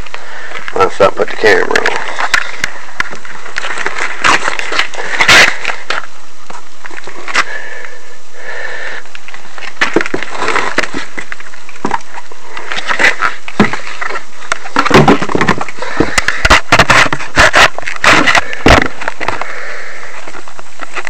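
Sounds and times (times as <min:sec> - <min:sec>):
steady hiss: 0:00.0 - 0:21.0.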